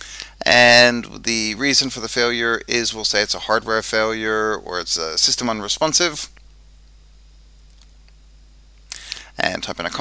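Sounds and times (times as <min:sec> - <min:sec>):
person speaking: 0:00.0 - 0:06.5, 0:08.9 - 0:10.0
low electrical hum: 0:00.0 - 0:10.0
faint hiss: 0:08.8 - 0:09.9.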